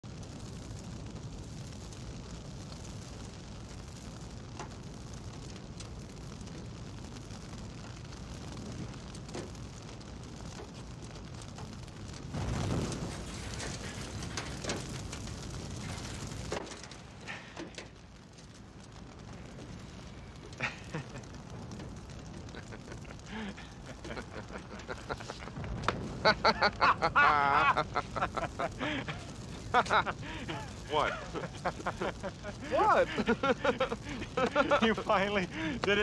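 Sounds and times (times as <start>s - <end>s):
fire crackles and pops: 0.0s - 36.0s
flames rushing: 0.0s - 36.0s.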